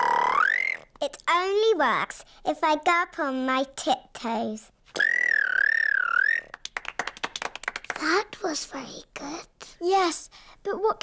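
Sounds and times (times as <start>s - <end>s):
cartoon child squealing: 0.0s - 0.9s, 5.0s - 6.6s
clapping: 6.5s - 8.2s.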